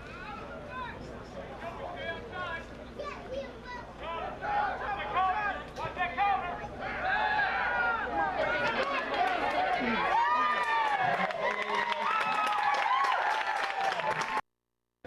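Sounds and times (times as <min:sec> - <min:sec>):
crowd shouting and calling out: 0:00.0 - 0:12.5.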